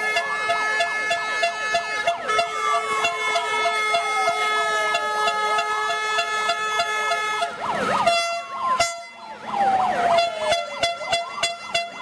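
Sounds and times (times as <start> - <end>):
air horns blaring: 0.0 - 9.2, 10.1 - 12.0
hand-held sirens wailing: 0.0 - 12.0.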